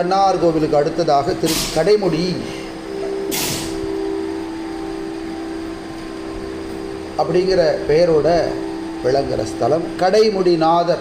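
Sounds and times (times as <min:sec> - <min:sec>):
instrumental drone: 0:00.0 - 0:11.0.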